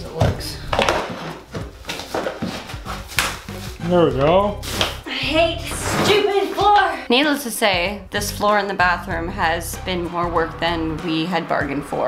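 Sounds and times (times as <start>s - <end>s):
pry bar scraping flooring: 0.8s - 3.8s, 5.6s - 6.8s.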